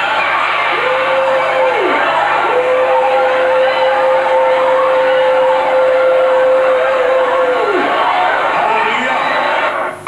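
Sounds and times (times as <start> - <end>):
congregation noise: 0.0 - 10.0.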